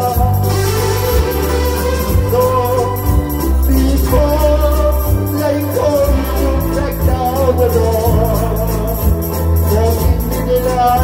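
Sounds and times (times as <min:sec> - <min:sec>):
electronic keyboard accompaniment: 0:00.0 - 0:11.0
man singing into a microphone: 0:00.0 - 0:11.0.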